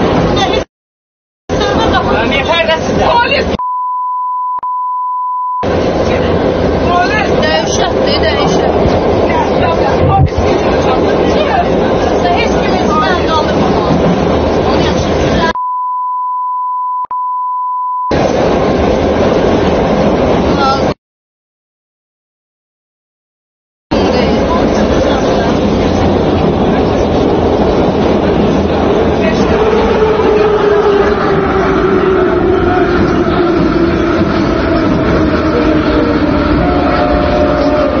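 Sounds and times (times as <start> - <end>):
metro train car running: 0.0 - 0.7, 1.5 - 3.6, 5.6 - 15.6, 18.1 - 21.0, 23.9 - 38.0
censor bleep: 3.6 - 5.7, 15.5 - 18.2.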